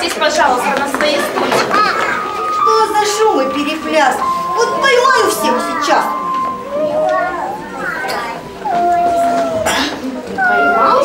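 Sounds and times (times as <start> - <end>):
children chattering and calling out: 0.0 - 11.0
child singing a steady note: 1.8 - 9.8.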